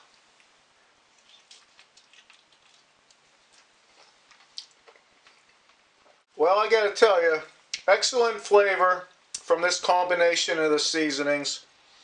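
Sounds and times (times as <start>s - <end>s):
person chewing: 1.0s - 6.2s
soft mouth clicks: 1.2s - 5.4s.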